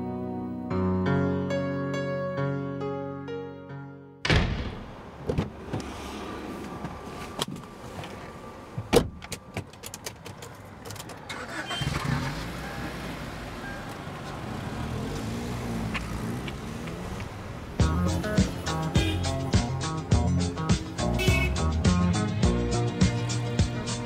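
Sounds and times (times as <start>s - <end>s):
car door shutting: 4.2s - 6.0s, 8.8s - 9.7s
keys and controls clicking: 9.1s - 11.6s.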